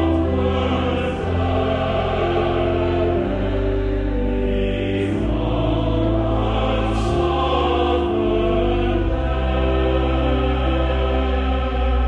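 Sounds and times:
church choir singing: 0.0 - 12.0
low organ bass: 0.0 - 12.0.

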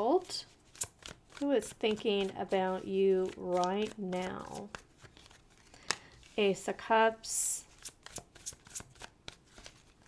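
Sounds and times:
cards being shuffled: 0.4 - 6.6, 7.7 - 10.0.

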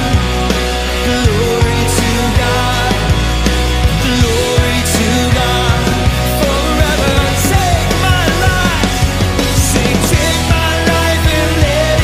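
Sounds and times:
live rock band playing: 0.0 - 12.0
person singing: 0.8 - 12.0.

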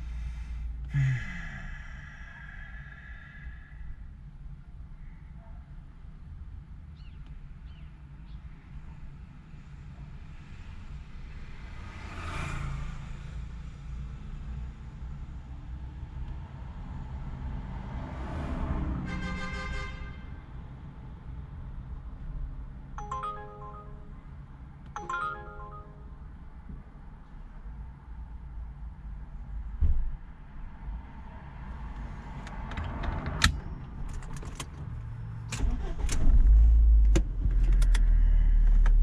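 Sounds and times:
vehicles passing by: 0.0 - 5.3, 8.0 - 19.4, 20.2 - 26.6
electronic ringtone melody: 23.0 - 24.4, 25.0 - 26.4.

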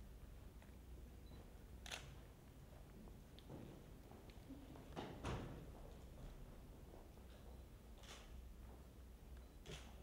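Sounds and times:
camera shutter click: 1.8 - 2.1.

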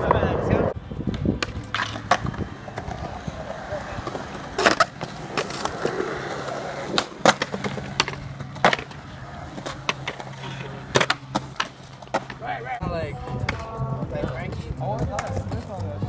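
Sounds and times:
skateboard wheels rolling on concrete: 0.0 - 16.0
skateboard clacks: 1.0 - 12.6, 13.4 - 13.7, 14.5 - 15.9.

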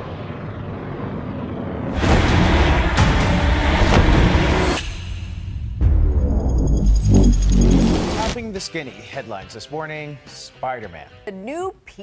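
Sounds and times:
low rumble: 0.1 - 8.4.

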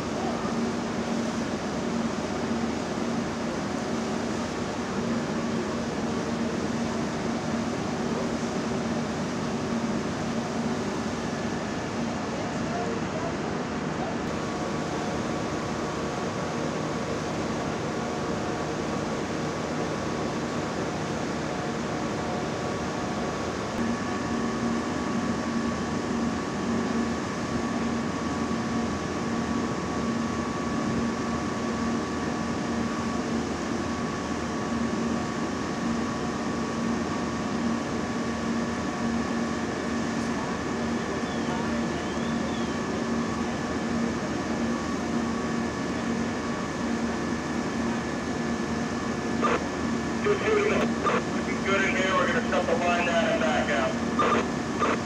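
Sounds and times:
ventilation fan droning: 0.0 - 55.0.

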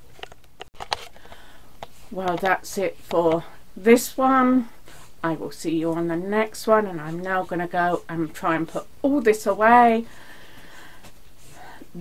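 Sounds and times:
soft breathy hiss: 9.6 - 12.0.

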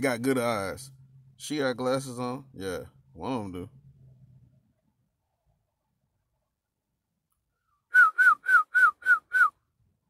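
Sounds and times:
short whistled notes: 7.9 - 9.6.

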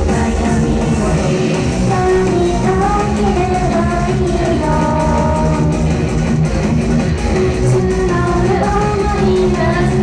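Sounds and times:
loud rock music: 0.0 - 10.0.

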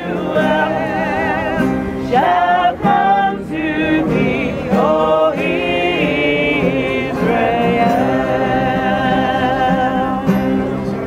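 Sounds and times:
acoustic guitar: 0.0 - 11.0
gospel choir singing: 0.0 - 11.0.

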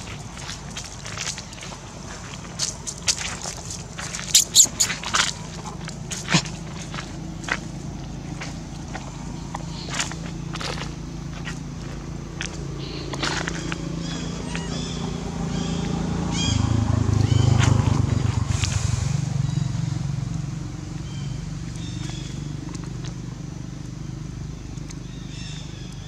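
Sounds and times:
motor engine humming: 3.8 - 26.0
high chirps and squeaks: 4.3 - 5.0.

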